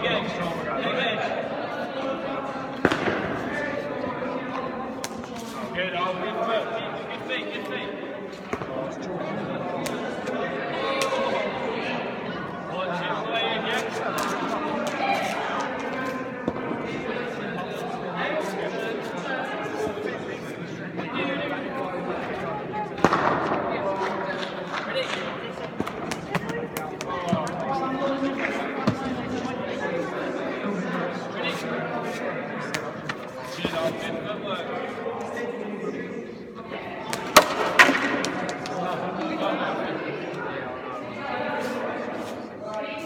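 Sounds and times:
voices chattering in echoing hall: 0.0 - 43.0.

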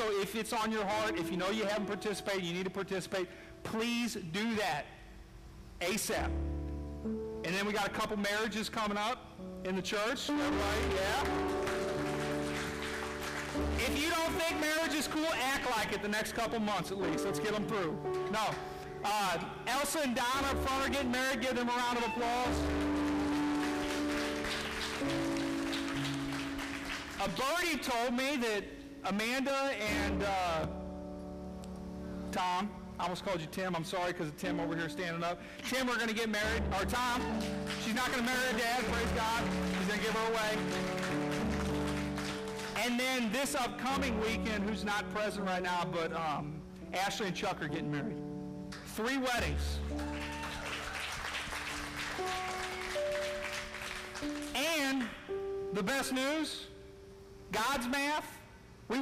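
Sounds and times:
band holding chords: 5.9 - 35.4, 36.1 - 50.1
congregation applauding: 10.4 - 16.5, 20.4 - 27.9, 36.9 - 44.1, 49.8 - 55.2.

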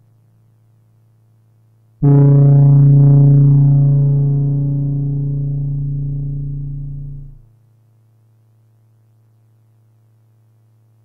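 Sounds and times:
low synthesizer note: 2.0 - 7.5.

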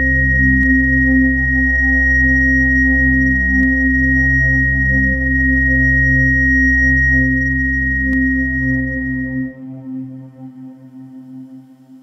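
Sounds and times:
high-pitched sine tone: 0.0 - 10.8.

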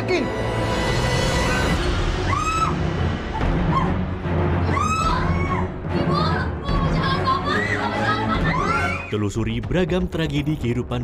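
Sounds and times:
background music with low notes: 0.0 - 11.0
shrill high-pitched voices: 4.6 - 9.1.

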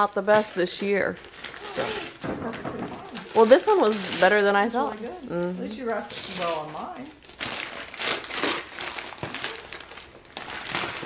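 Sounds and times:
paper crumpling and rustling: 0.0 - 5.3, 6.0 - 11.0.

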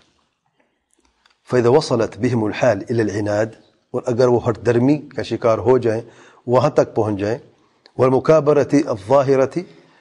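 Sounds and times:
man speaking: 1.4 - 9.8.

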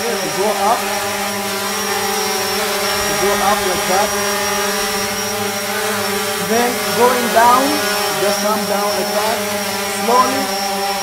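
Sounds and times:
quadcopter hovering hum: 0.0 - 11.0.

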